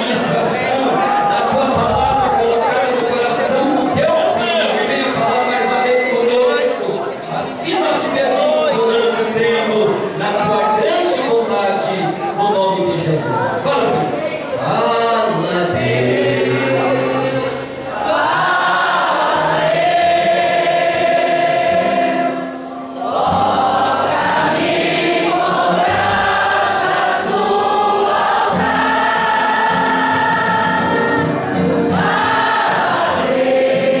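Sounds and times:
group singing a hymn: 14.5s - 34.0s.

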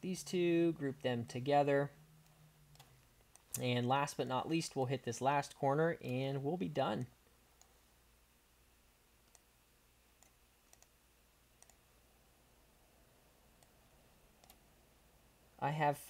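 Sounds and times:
computer mouse clicks: 2.2s - 3.7s, 9.2s - 9.5s, 10.2s - 11.0s, 11.6s - 11.8s, 14.4s - 14.6s.

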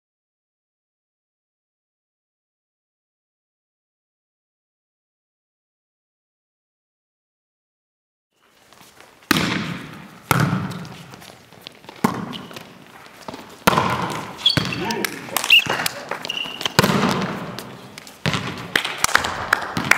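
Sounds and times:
volleyball being hit: 9.3s - 11.2s, 11.9s - 19.9s
shoe squeaks: 10.8s - 13.6s, 14.2s - 16.8s, 17.5s - 18.3s
players' voices: 13.8s - 18.2s.

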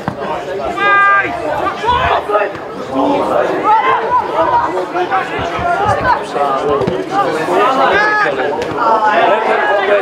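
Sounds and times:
players shouting and chattering: 0.0s - 10.0s.

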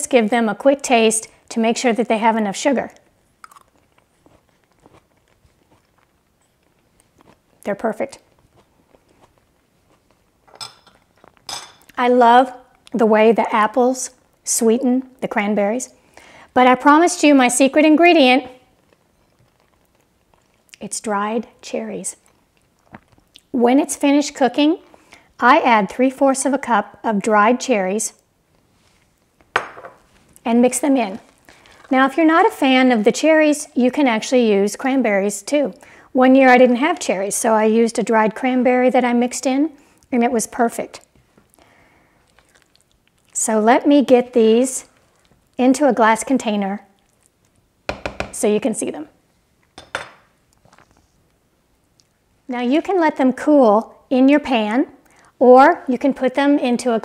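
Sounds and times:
person chewing softly: 2.9s - 12.0s, 18.5s - 21.6s, 22.2s - 23.6s, 31.2s - 31.9s, 39.8s - 40.1s, 41.0s - 43.4s, 44.8s - 45.6s, 46.8s - 47.8s, 50.4s - 52.4s, 55.0s - 55.4s
utensil knocking on cookware: 47.9s - 48.4s.

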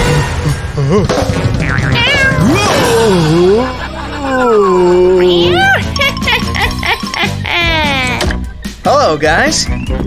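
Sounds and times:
background music: 0.0s - 10.0s
person crying out: 7.3s - 8.3s.

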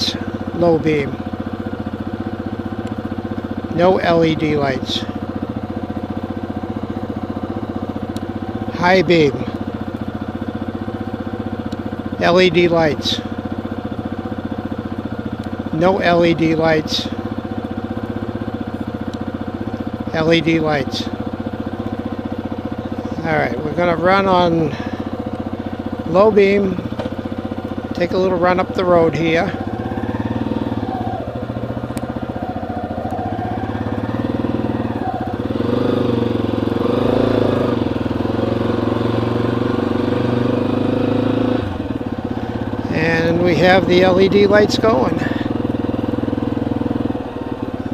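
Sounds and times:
motorcycle engine idling: 0.0s - 47.9s.

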